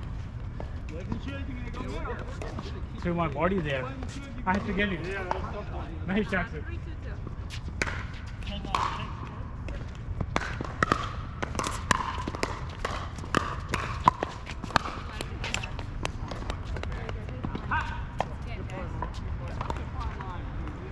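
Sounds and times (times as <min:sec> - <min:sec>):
players' voices: 0:00.5 - 0:20.9
ball bouncing on hard court: 0:07.5 - 0:20.9.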